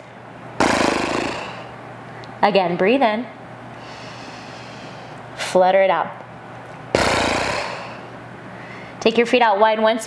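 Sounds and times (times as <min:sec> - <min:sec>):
woman doing lip trill: 0:00.6 - 0:01.7.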